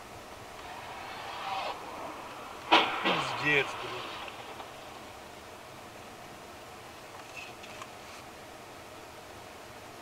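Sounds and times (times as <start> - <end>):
cars colliding crash: 0.6 - 5.2.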